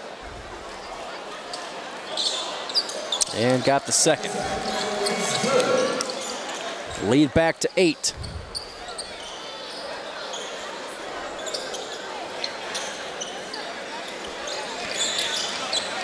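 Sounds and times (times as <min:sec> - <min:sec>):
background voices: 0:03.3 - 0:07.4.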